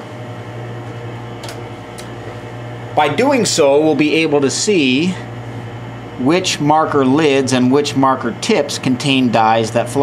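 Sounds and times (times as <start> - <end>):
ventilation hum: 0.0 - 10.0.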